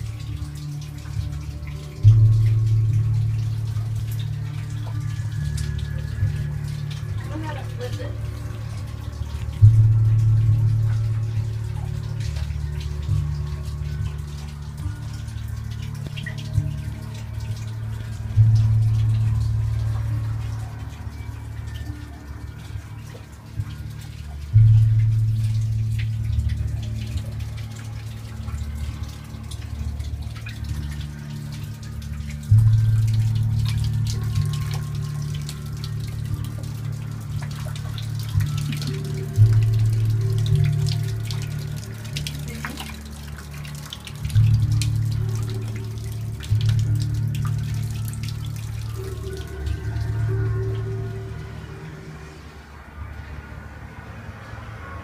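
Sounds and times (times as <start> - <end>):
deep ambient drone: 0.0 - 55.0
low swell: 16.5 - 55.0.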